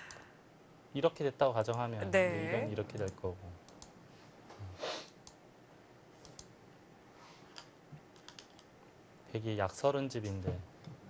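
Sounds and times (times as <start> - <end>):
computer mouse clicks: 3.0 - 3.9, 6.2 - 6.5, 7.6 - 8.7.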